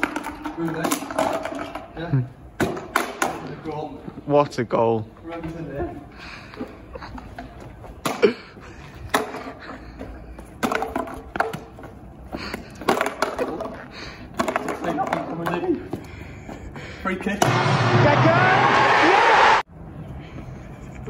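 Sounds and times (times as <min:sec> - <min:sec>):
can clattering on cobblestones: 0:00.0 - 0:02.0, 0:14.4 - 0:15.6
stadium crowd cheering: 0:17.4 - 0:19.7.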